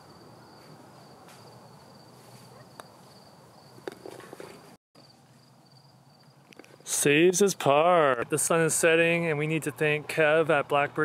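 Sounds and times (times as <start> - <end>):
insects trilling: 0.0 - 3.9, 5.0 - 6.8.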